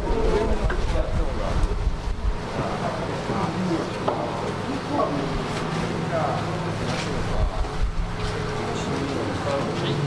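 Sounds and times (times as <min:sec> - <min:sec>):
faint background voices: 0:00.0 - 0:10.0
steady low hum: 0:00.0 - 0:10.0.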